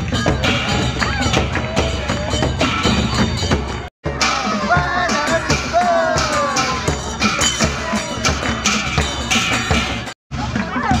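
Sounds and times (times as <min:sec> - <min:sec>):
low drum beats: 0:00.0 - 0:11.0.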